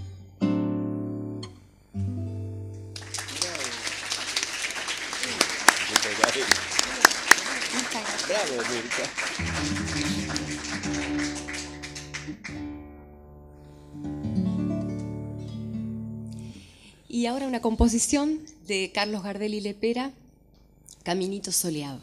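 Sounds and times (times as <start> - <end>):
classical guitar chords: 0.0 - 3.7, 6.0 - 16.6
applause: 3.0 - 12.8.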